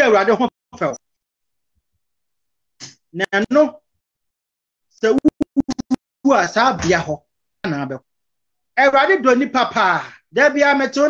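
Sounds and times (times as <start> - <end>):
man speaking over a video call: 0.0 - 1.2, 2.8 - 4.0, 5.0 - 5.3, 6.2 - 11.0.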